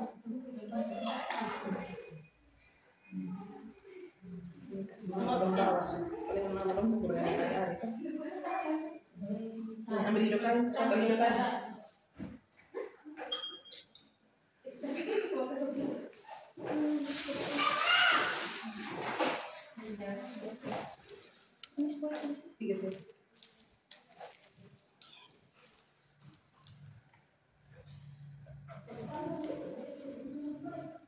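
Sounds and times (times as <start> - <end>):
quiet voices: 0.0 - 9.9, 27.7 - 31.0.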